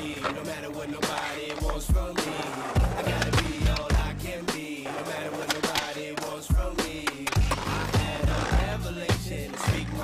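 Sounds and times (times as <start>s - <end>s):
skateboard clack: 0.0s - 4.0s, 4.8s - 8.7s
skateboard wheels rolling: 0.0s - 10.0s
music with heavy bass beat: 1.6s - 4.8s, 6.4s - 10.0s.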